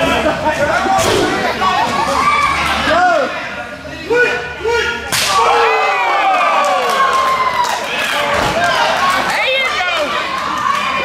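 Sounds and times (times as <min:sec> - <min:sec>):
crowd crying out: 0:04.6 - 0:11.0.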